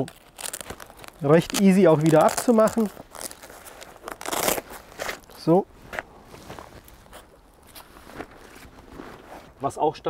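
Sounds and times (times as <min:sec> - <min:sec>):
fabric bag rustling: 0:00.0 - 0:09.7.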